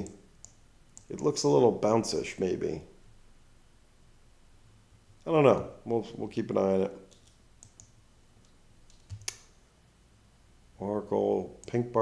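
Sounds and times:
faint computer clicks: 7.1 - 9.5.

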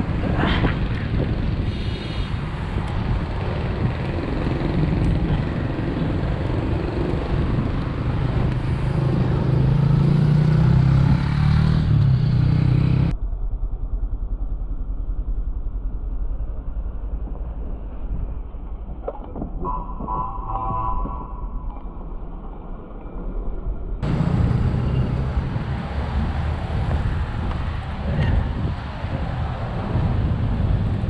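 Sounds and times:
wind buffeting microphone: 0.0 - 9.3, 24.0 - 31.0
road traffic: 0.0 - 31.0
low rumble: 13.1 - 31.0.

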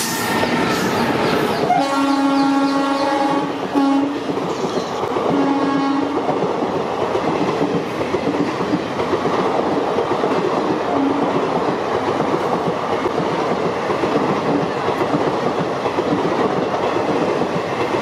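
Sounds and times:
train wheels clattering on rails: 0.0 - 18.0
locomotive horn: 1.6 - 4.2, 5.3 - 6.2.

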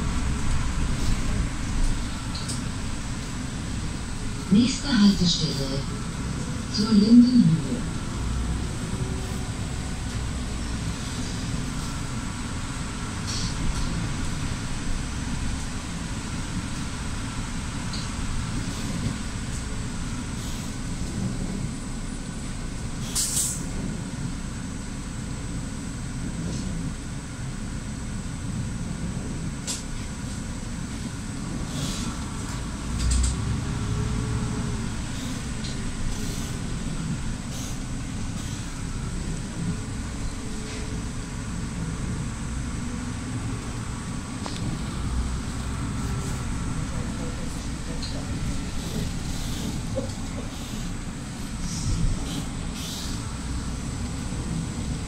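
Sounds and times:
bus rumble on wet road: 0.0 - 55.0.

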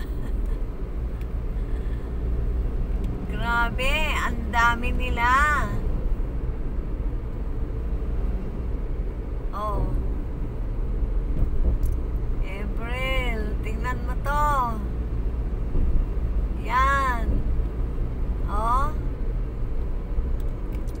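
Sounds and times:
car engine and tyres rumbling: 0.0 - 21.0.

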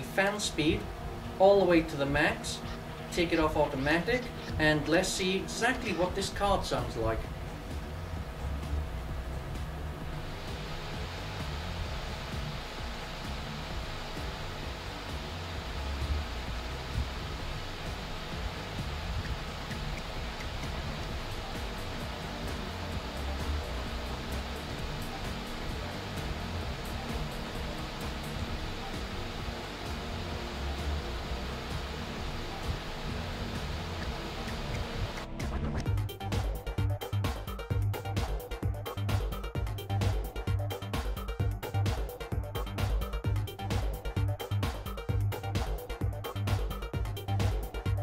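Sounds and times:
cooling fan rushing air: 0.0 - 48.0.

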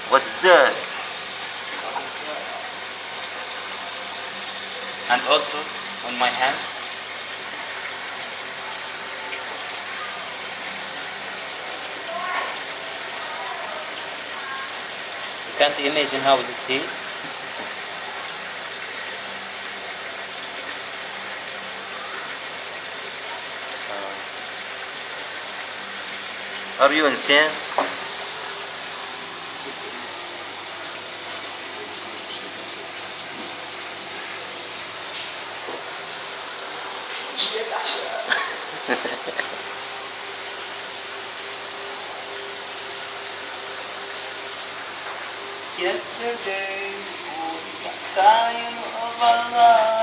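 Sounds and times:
water running hiss: 0.0 - 50.0.

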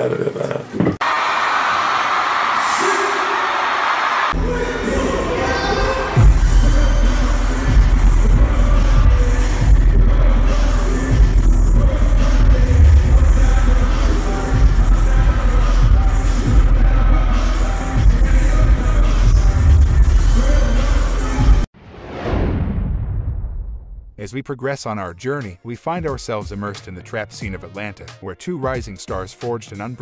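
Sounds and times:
person rapping: 4.4 - 21.6, 24.3 - 30.0
trap beat with heavy bass: 6.2 - 21.7, 25.3 - 30.0.

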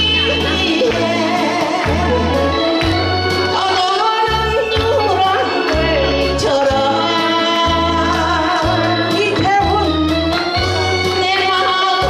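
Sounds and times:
amplified musical accompaniment: 0.0 - 12.0
woman singing into microphone: 0.0 - 12.0.

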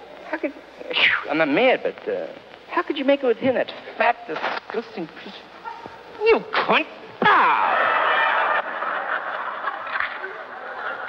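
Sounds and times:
audience laughing loudly: 7.5 - 11.0
murmur of scattered laughter: 7.7 - 11.0.

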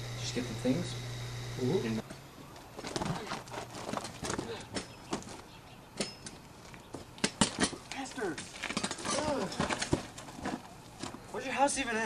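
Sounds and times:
bike clicks and knocks: 2.0 - 11.2.

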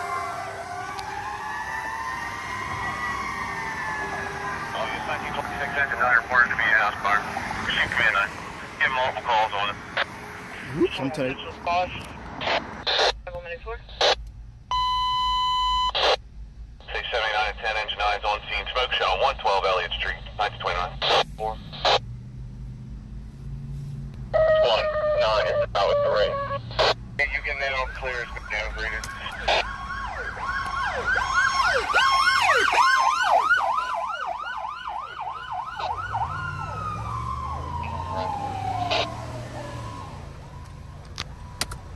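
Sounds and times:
fire engine siren yelping: 0.0 - 11.4, 24.3 - 41.9
dispatcher voice over radio: 4.7 - 9.8, 10.6 - 12.2, 16.8 - 22.0, 24.4 - 30.4, 37.8 - 39.1
high radio beep: 14.0 - 16.2, 24.4 - 29.7
radio static burst: 16.8 - 22.0, 25.2 - 29.7
truck engine rumbling: 18.5 - 41.9.

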